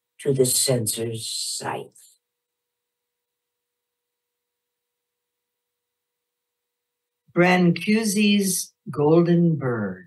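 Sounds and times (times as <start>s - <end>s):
faint steady tone: 0.0s - 7.5s.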